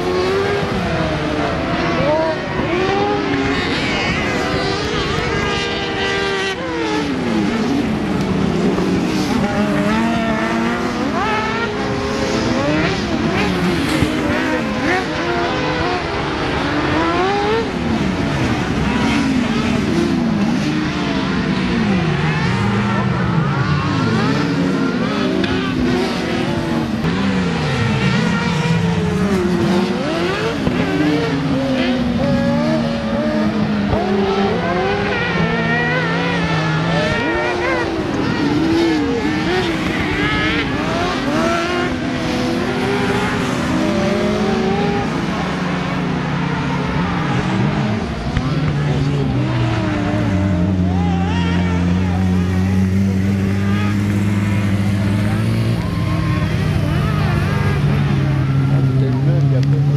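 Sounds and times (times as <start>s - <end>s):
buggy engines revving: 0.0s - 59.9s.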